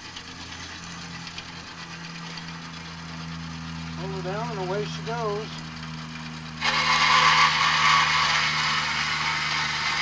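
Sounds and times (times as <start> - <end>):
bandsaw motor humming: 0.0 - 10.0
saw blade cutting metal: 6.6 - 10.0.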